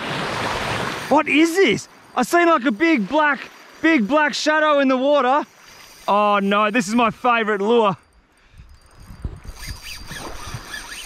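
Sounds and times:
fishing reel drag buzzing: 0:01.8 - 0:11.0
wind rumble: 0:08.0 - 0:10.9.

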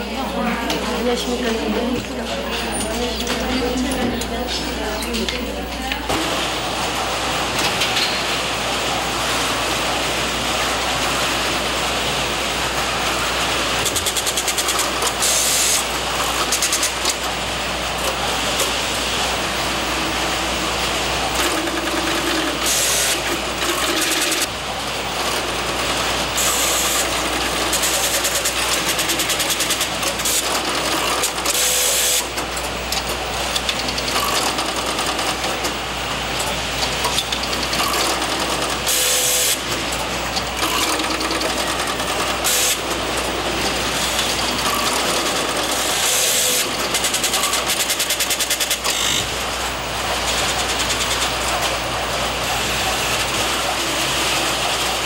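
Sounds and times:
switches and relays clattering: 0:00.2 - 0:08.5, 0:12.3 - 0:19.0, 0:21.2 - 0:55.0.

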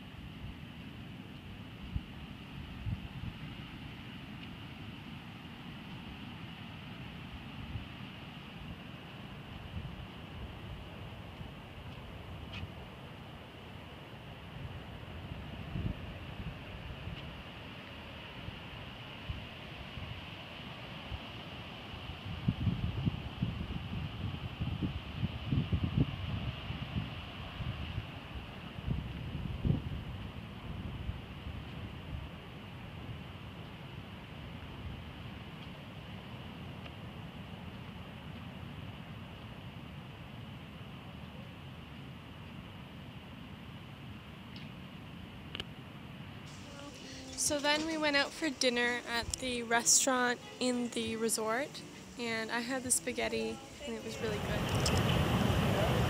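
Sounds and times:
outdoor hiss: 0:00.0 - 0:56.0
wind buffeting microphone: 0:14.6 - 0:17.4, 0:22.2 - 0:33.3, 0:47.1 - 0:56.0
high-pitched drone: 0:46.5 - 0:54.6.

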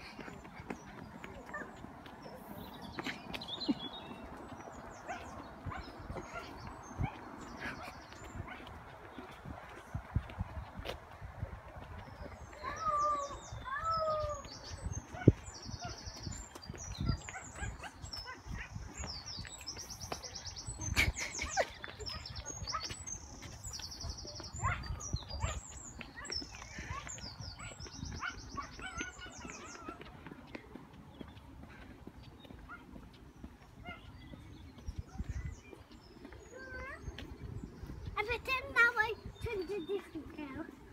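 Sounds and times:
footsteps on paved path: 0:00.0 - 0:40.9.

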